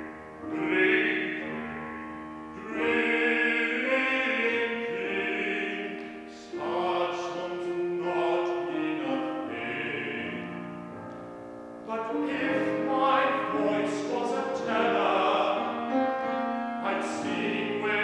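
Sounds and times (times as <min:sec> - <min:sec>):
piano accompaniment: 0:00.0 - 0:18.0
bass voice singing operatically: 0:00.5 - 0:01.5, 0:02.6 - 0:10.4, 0:11.9 - 0:18.0.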